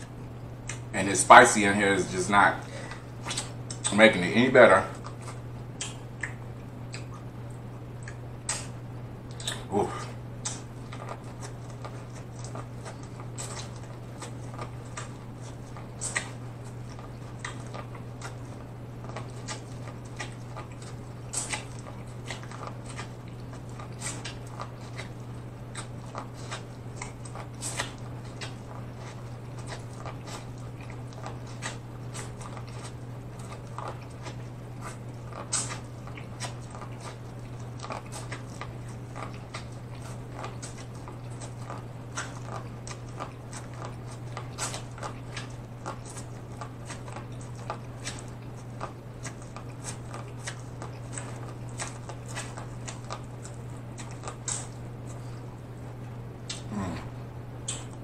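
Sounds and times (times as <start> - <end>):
chewing corn on the cob: 0.0 - 58.0
steady low hum: 0.0 - 58.0.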